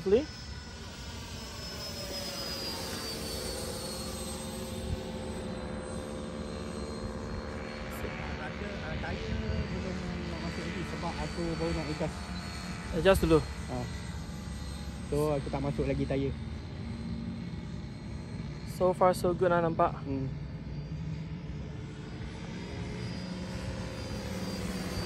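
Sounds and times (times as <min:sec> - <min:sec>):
model jet fan whine flying overhead: 0:00.0 - 0:25.0.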